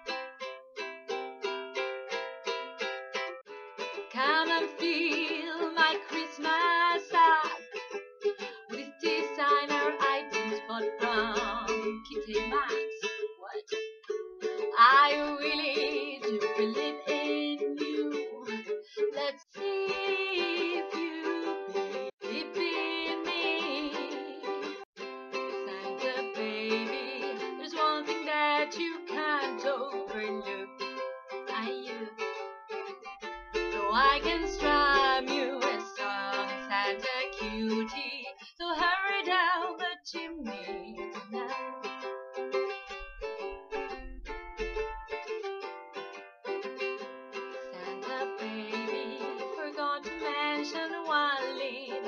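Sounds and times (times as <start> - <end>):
ukulele strumming: 0.0 - 52.0
person singing: 4.0 - 13.9, 14.5 - 32.5, 33.4 - 42.3, 47.5 - 52.0.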